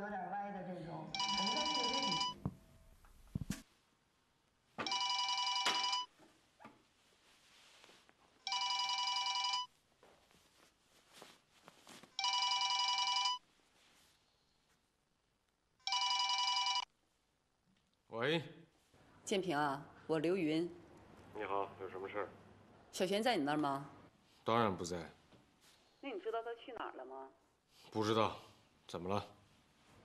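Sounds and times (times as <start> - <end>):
electronic telephone ringing: 1.2 - 2.5, 4.8 - 6.1, 8.4 - 9.7, 12.2 - 13.4, 15.8 - 16.9.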